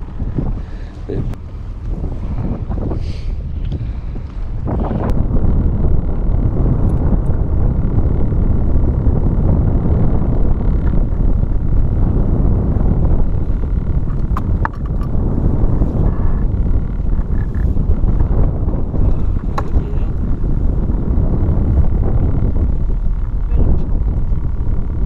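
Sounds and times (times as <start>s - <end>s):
wind buffeting microphone: 0.0s - 25.0s.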